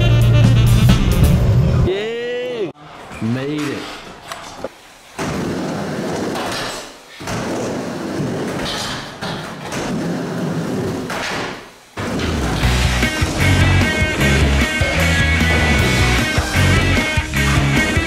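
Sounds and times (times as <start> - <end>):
skateboard wheels rolling on wood: 4.6 - 18.0
rock music with heavy beat: 12.6 - 18.0.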